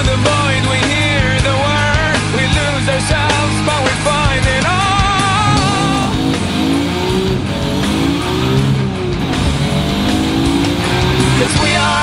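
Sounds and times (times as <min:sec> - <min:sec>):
rock music: 0:00.0 - 0:12.0
car engine accelerating hard: 0:03.4 - 0:12.0.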